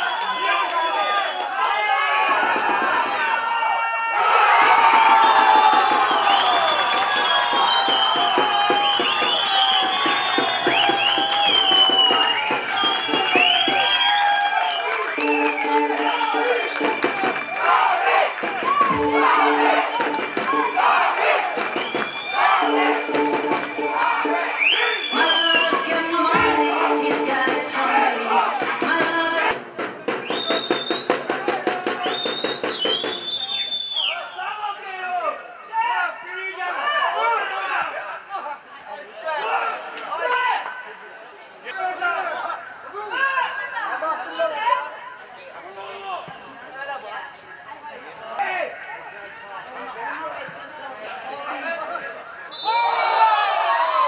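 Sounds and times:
whistles: 0.0 - 1.6, 5.1 - 26.6, 30.1 - 31.3, 31.9 - 34.5, 52.4 - 53.6
high shouts: 0.0 - 29.6
football crowd cheering: 0.0 - 38.3, 50.4 - 54.0.

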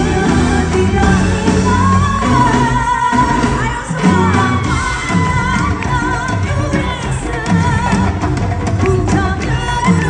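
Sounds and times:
live pop band playing: 0.0 - 10.0.

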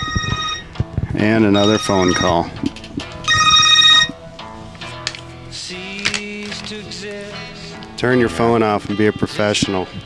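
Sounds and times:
phone ringing: 0.0 - 2.6, 3.2 - 4.2
background music: 0.0 - 10.0.

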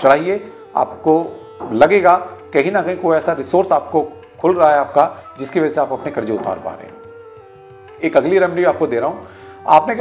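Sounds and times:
man speaking: 0.0 - 7.0, 8.0 - 10.0
soft background music: 0.0 - 10.0.

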